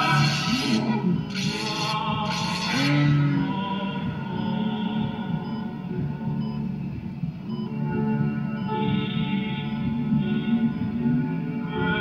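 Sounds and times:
slow ambient music: 0:00.0 - 0:12.0.

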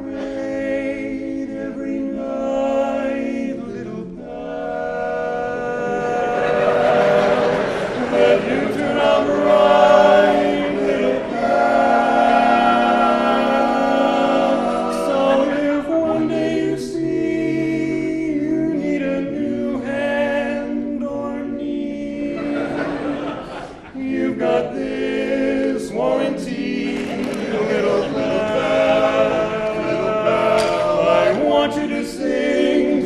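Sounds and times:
quartet singing a cappella: 0:00.0 - 0:33.0.

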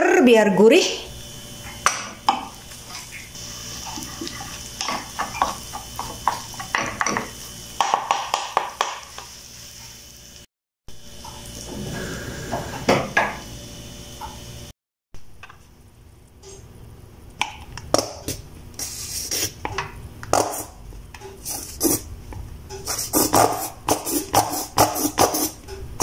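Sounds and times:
steady sizzle: 0:01.1 - 0:23.2.

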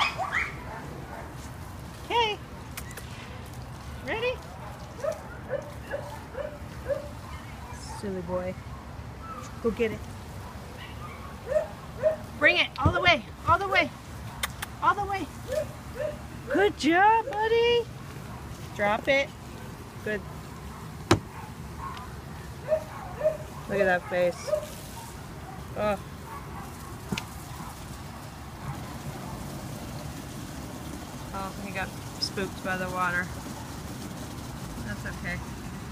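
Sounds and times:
garden hose spraying water: 0:00.0 - 0:35.9.

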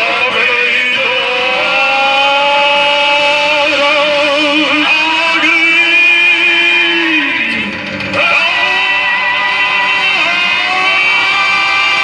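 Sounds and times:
man singing long held note: 0:00.0 - 0:12.0
recorded gospel song playing: 0:00.0 - 0:12.0.

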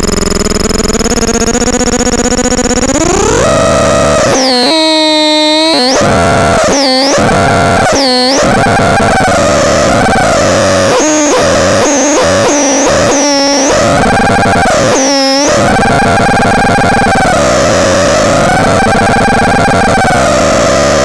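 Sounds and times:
distorted electronic drone: 0:00.0 - 0:21.0.

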